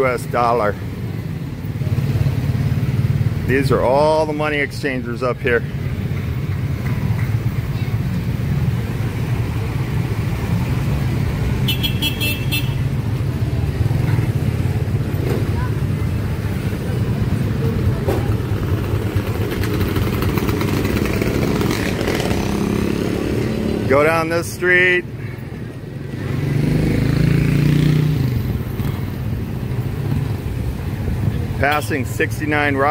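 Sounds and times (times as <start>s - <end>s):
motorcycle engines running: 0.0s - 32.9s.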